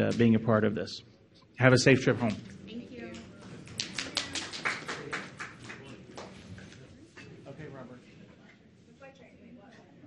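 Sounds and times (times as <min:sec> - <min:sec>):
people clapping: 0:03.1 - 0:06.9.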